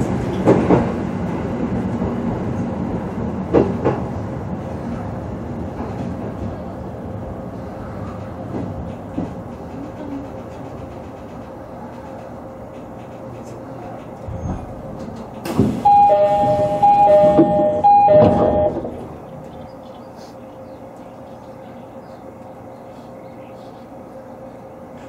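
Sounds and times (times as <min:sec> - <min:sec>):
electric train running: 0:15.0 - 0:19.9
two-note signal tones: 0:15.8 - 0:18.9.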